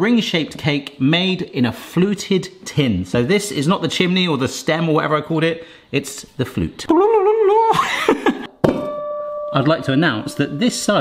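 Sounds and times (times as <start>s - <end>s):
steady held tone: 8.6s - 11.0s.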